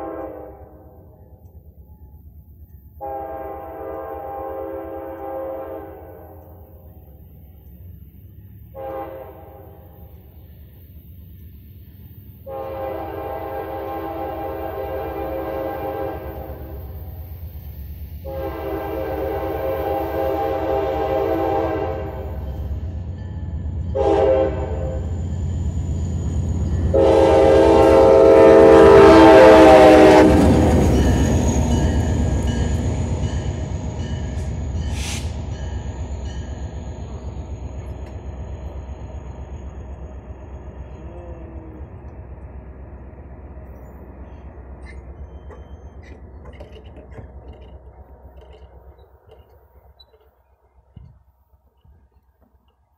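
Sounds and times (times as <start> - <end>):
locomotive horn blasts: 0.0 - 1.2, 3.0 - 6.7, 8.7 - 10.1, 12.4 - 16.8, 18.2 - 22.5, 23.9 - 25.1, 26.8 - 35.4
train rumble: 0.0 - 52.9.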